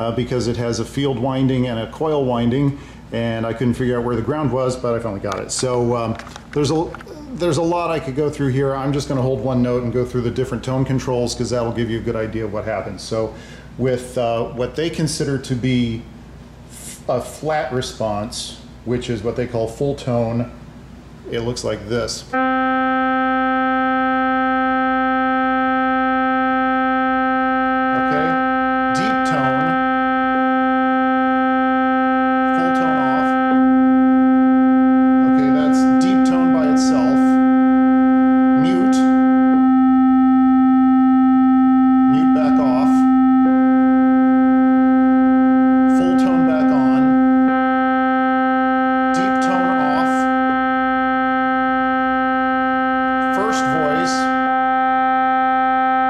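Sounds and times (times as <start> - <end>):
keyboard holding a steady note: 22.3 - 56.0.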